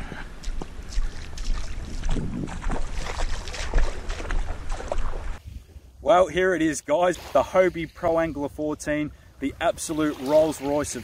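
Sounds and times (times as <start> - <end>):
footsteps splashing in shallow water: 0.0 - 5.4, 9.9 - 11.0
wind rumbling on microphone: 0.0 - 6.0.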